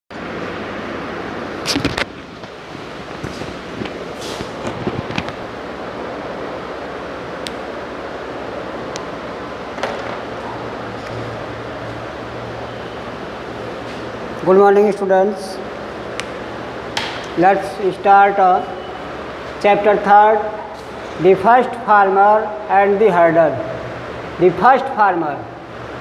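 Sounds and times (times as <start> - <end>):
room hiss: 0.2 - 26.0
sharp knocks and clicks: 16.2 - 17.4.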